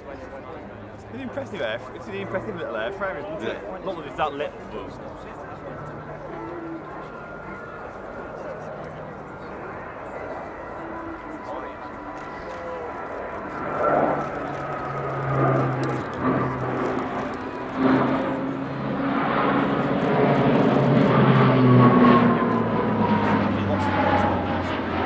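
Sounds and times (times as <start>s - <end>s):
turboprop aircraft droning: 0.0s - 25.0s.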